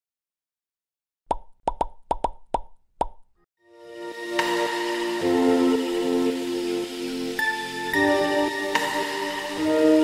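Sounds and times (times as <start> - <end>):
intro music: 3.7 - 10.0.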